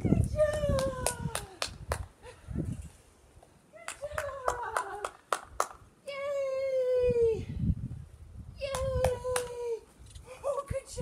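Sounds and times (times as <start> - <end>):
person clapping hands: 0.5 - 2.1, 3.8 - 5.8, 8.7 - 9.6.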